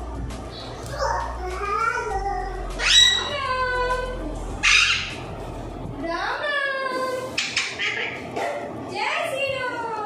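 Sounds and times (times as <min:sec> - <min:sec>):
parakeet harsh squawk: 0:02.8 - 0:03.4, 0:04.6 - 0:05.2, 0:07.4 - 0:08.3
parakeet calling: 0:02.8 - 0:03.7, 0:04.6 - 0:05.3, 0:07.3 - 0:08.4.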